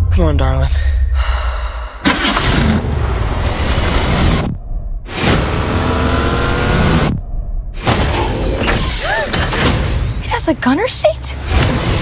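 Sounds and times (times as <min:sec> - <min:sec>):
car engine starting and accelerating: 0:02.1 - 0:07.2.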